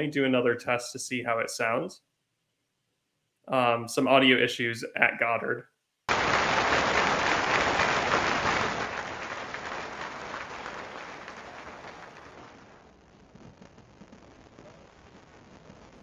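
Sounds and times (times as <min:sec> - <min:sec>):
faint hiss: 0:00.0 - 0:02.0, 0:03.4 - 0:16.0
audience applauding: 0:06.1 - 0:12.8.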